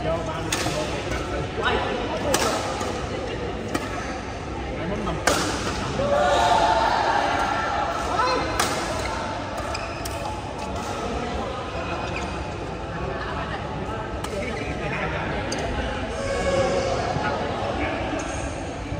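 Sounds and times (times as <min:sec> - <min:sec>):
players' voices: 0:00.0 - 0:18.9.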